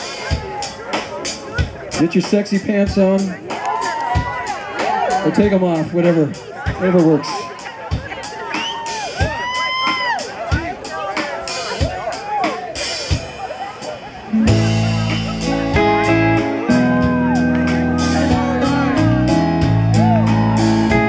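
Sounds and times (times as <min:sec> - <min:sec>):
live rock band: 0:00.0 - 0:21.0
audience whooping and cheering: 0:03.5 - 0:05.4, 0:07.1 - 0:10.6, 0:16.7 - 0:19.0, 0:19.6 - 0:21.0.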